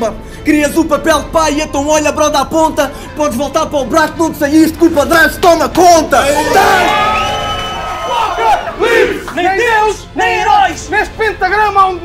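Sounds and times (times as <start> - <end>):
crowd shouting: 6.2 - 10.8.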